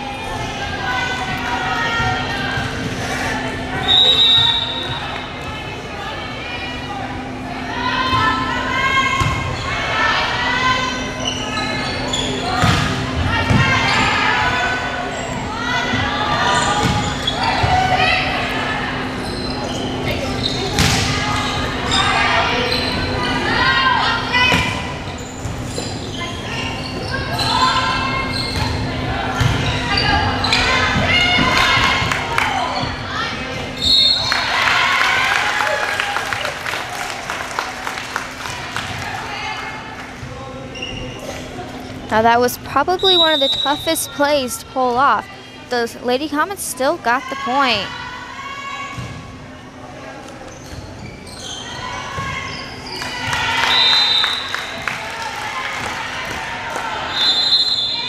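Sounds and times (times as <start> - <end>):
people shouting and cheering: 29.1 - 40.2, 51.6 - 58.0.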